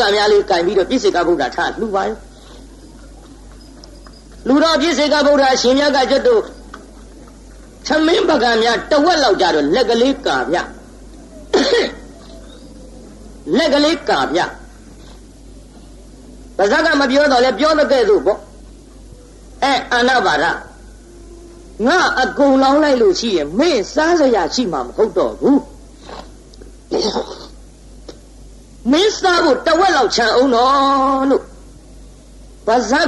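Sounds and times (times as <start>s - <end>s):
faint room hiss: 0.0s - 33.0s
faint small sounds: 2.2s - 4.5s
man giving a sermon: 4.4s - 6.6s, 7.9s - 10.7s, 13.5s - 14.6s
man coughing: 11.5s - 12.1s, 26.9s - 27.6s.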